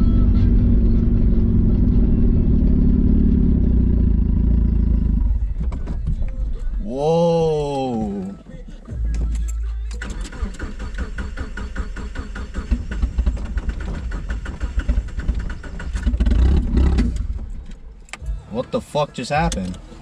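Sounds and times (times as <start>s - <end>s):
engine cranking on starter: 9.2s - 17.9s.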